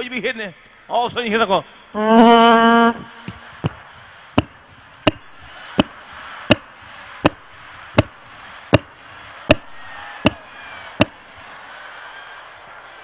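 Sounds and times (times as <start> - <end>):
microphone being struck: 4.4 - 8.9.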